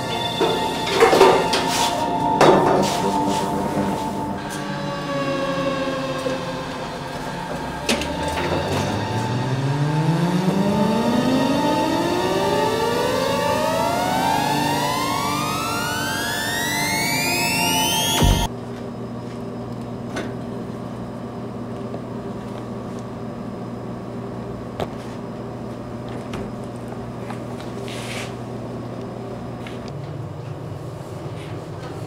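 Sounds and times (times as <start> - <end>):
rising pitch sweep: 0.0 - 18.5
sustained droning chord: 0.0 - 18.5.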